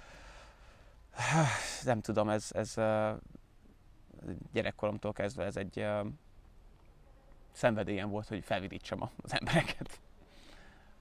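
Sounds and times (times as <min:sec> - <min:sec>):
man sighing: 0:01.1 - 0:01.8.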